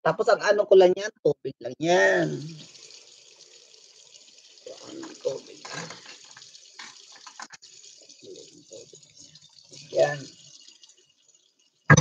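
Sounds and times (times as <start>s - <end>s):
faint steady hiss: 0.2s - 12.0s.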